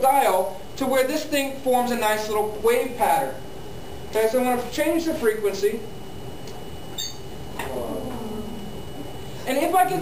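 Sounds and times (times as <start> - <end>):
wave vibrator buzzing: 0.0 - 10.0.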